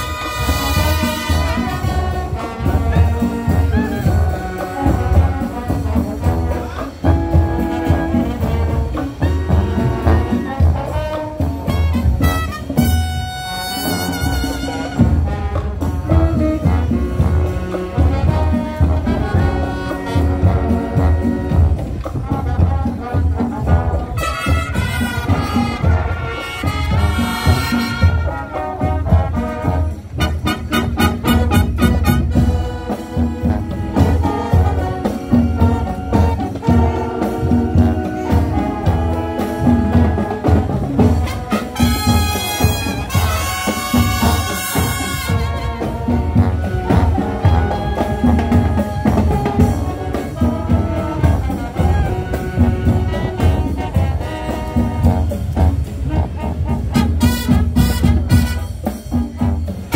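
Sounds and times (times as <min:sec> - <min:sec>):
brass section playing: 0:00.0 - 0:59.9
steady low drum beat: 0:00.0 - 0:59.9.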